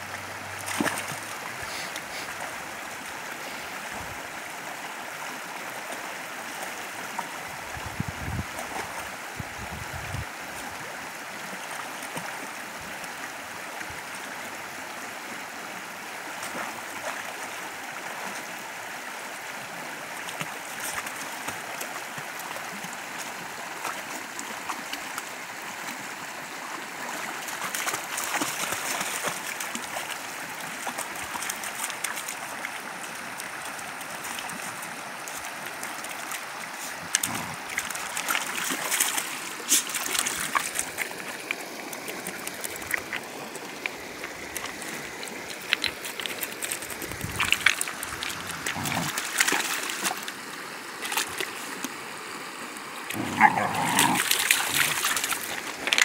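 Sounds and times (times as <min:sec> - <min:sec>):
creek running over stones: 0:00.0 - 0:56.0
puppies splashing in water: 0:00.6 - 0:02.4, 0:27.0 - 0:32.7, 0:35.3 - 0:43.2, 0:44.0 - 0:50.4, 0:53.1 - 0:56.0.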